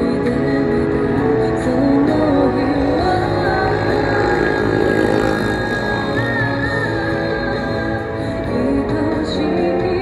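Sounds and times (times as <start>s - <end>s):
backing music: 0.0s - 10.0s
woman singing into a microphone: 0.0s - 10.0s.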